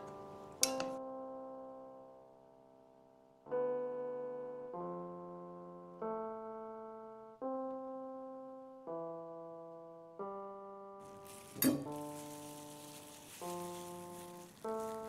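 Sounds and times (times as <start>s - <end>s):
slow piano chords: 0.0s - 15.0s
faint hiss: 11.1s - 15.0s.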